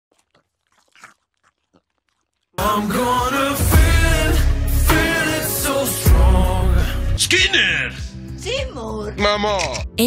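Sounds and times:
popcorn being chewed: 0.0s - 3.6s.

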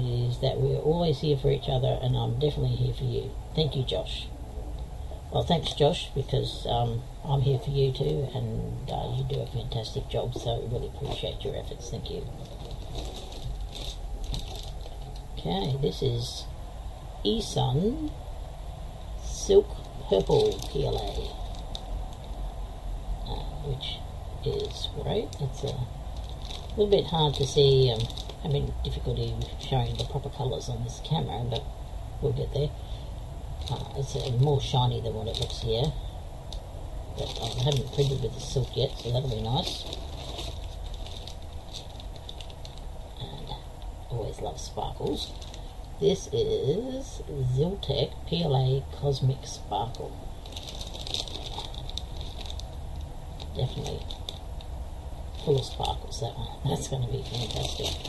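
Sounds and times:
steady low hum: 0.0s - 58.0s
plastic bag crinkling: 7.4s - 15.8s, 19.1s - 22.5s, 23.3s - 31.7s, 33.5s - 43.6s, 44.3s - 47.0s, 49.5s - 58.0s
packaging rustling: 12.2s - 15.3s, 19.6s - 22.4s, 24.5s - 30.9s, 33.6s - 36.0s, 37.2s - 43.0s, 45.2s - 45.8s, 50.4s - 54.7s, 56.7s - 58.0s.

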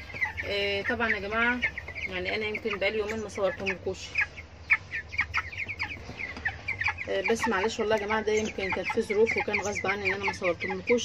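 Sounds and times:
chicks peeping: 0.0s - 11.0s.

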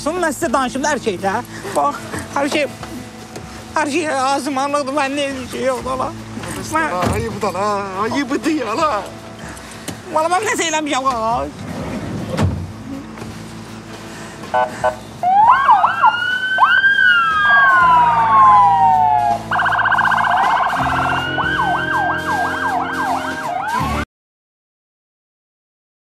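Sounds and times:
police sirens wailing: 12.7s - 24.0s.

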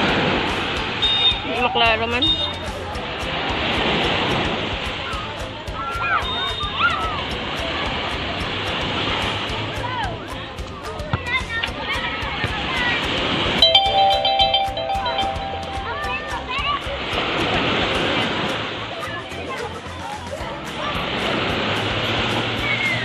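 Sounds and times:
music with held notes: 0.0s - 23.0s
waves breaking on sandy beach: 0.0s - 23.0s.

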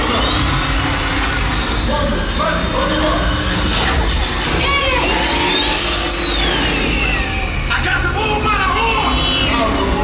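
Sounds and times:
long rising whine: 0.0s - 10.0s.

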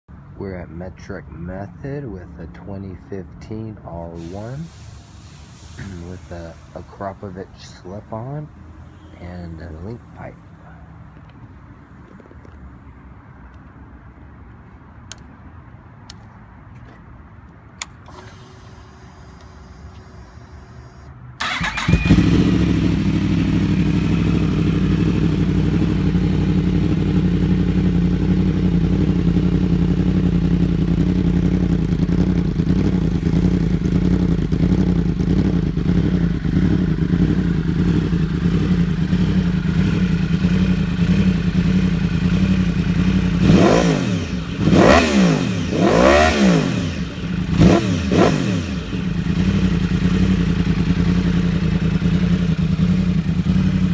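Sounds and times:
motorcycle engine starting and idling: 0.5s - 10.4s, 17.8s - 53.9s
motorcycle engine revving: 21.4s - 53.9s.

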